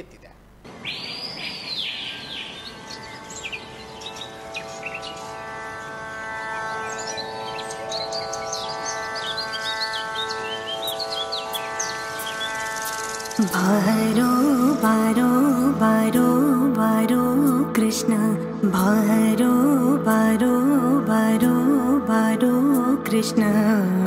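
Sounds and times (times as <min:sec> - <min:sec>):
birds chirping: 0:00.7 - 0:18.1
sustained instrumental chord: 0:02.2 - 0:24.0.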